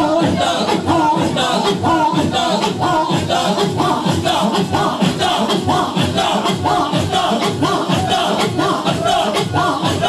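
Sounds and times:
men chanting and singing: 0:00.0 - 0:10.0
steady driving beat: 0:00.0 - 0:10.0.

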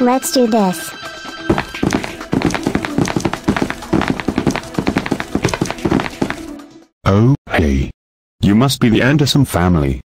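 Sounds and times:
rapid irregular tapping: 0:01.5 - 0:06.5.

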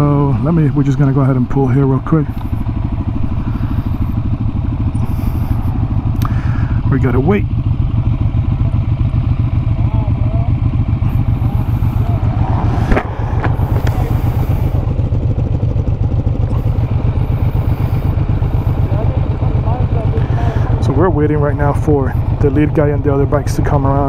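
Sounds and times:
motorcycle engine idling: 0:00.0 - 0:24.0.

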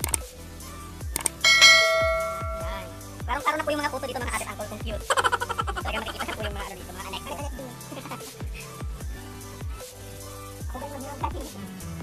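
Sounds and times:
background music with drum hits: 0:00.0 - 0:12.0
bright bell ding: 0:01.4 - 0:03.0.

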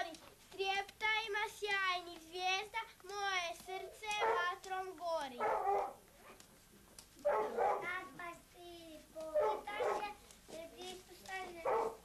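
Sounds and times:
child's high-pitched voice: 0:00.0 - 0:05.5, 0:07.8 - 0:12.0.

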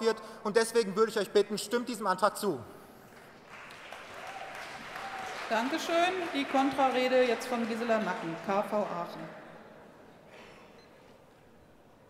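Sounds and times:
audience applause: 0:03.3 - 0:09.4.

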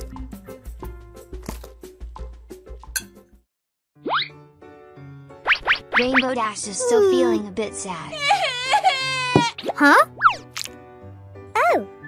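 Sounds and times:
upbeat background music: 0:00.0 - 0:03.4, 0:04.0 - 0:12.0.

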